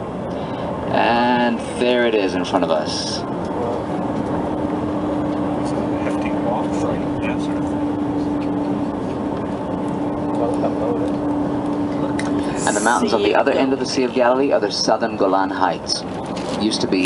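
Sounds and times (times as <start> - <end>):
steady hum: 0.0 - 15.6
bus road and engine noise: 0.0 - 17.0.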